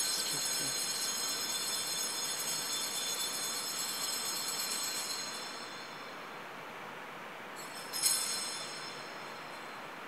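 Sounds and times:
altar bells ringing: 0:00.0 - 0:06.2, 0:07.6 - 0:09.8.

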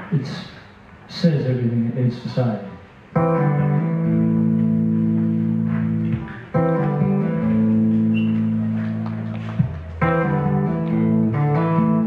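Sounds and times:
guitar chords ringing: 0:03.1 - 0:12.0.

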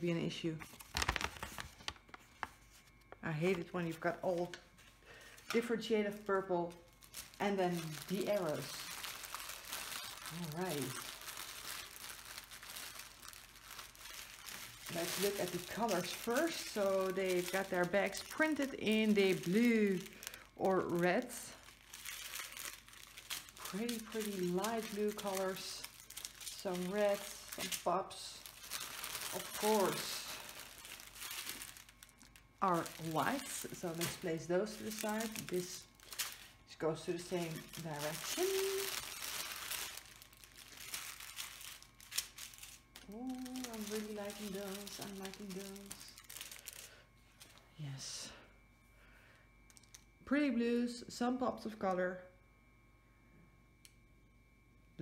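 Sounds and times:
plastic bag crinkling: 0:00.5 - 0:47.8.

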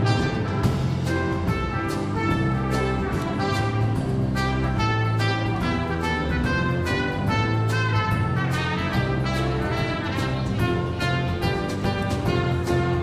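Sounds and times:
drum kit: 0:00.0 - 0:13.0
electric bass: 0:00.0 - 0:13.0
piano: 0:00.0 - 0:13.0
trumpet melody: 0:00.0 - 0:13.0.

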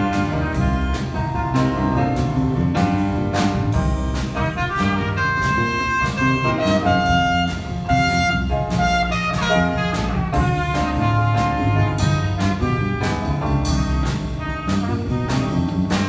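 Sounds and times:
drum and cymbal strikes: 0:00.0 - 0:16.0
jazz big band playing: 0:00.0 - 0:16.0
saxophones and brass melody: 0:00.0 - 0:16.0.

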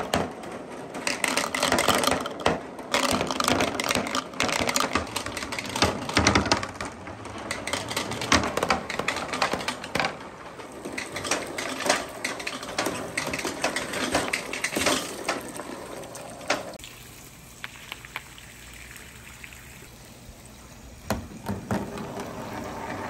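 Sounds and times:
plastic marbles clattering down a board: 0:00.0 - 0:16.8.

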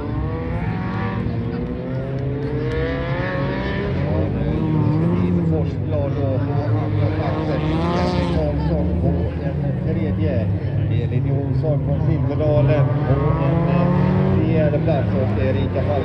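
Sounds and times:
race car engines revving: 0:00.0 - 0:16.0.

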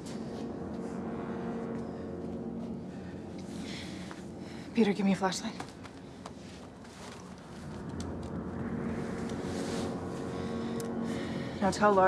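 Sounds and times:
low rumbling drone: 0:00.0 - 0:12.0.

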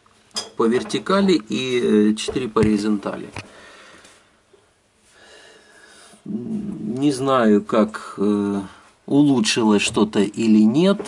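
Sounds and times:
low steady hiss: 0:00.0 - 0:11.0
faint breath: 0:03.4 - 0:06.2.

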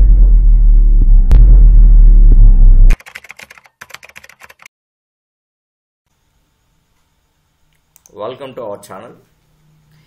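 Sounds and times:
deep droning music sting: 0:00.0 - 0:02.9
rapid keyboard typing clicks: 0:02.9 - 0:04.7.

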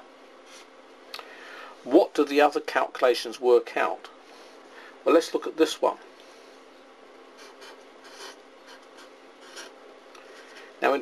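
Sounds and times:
marker pen scratching on paper: 0:07.4 - 0:10.7.

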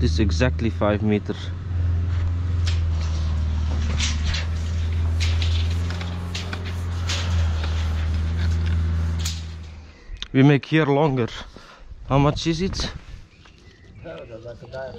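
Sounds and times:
vehicle engine humming: 0:00.0 - 0:10.3.

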